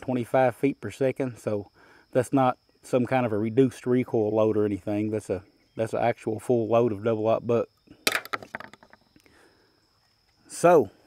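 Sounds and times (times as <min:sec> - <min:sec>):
handling clicks and knocks: 0:08.1 - 0:09.0.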